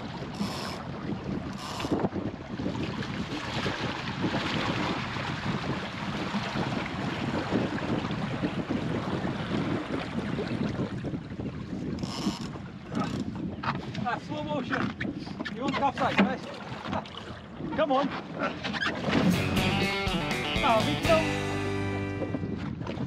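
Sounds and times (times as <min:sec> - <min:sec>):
wind on microphone: 0:00.0 - 0:16.1, 0:22.1 - 0:23.0
water rushing along a hull: 0:00.0 - 0:19.7, 0:20.5 - 0:23.0
music: 0:19.2 - 0:22.6
man calling out: 0:19.9 - 0:21.8.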